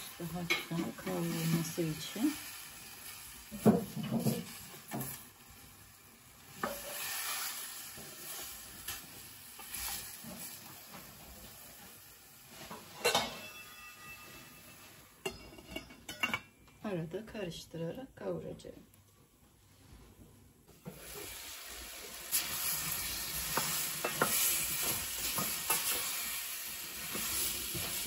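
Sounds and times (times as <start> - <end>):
vegetables sizzling: 0.0 - 15.2, 20.7 - 28.0
ringing metal clink: 13.1 - 14.6.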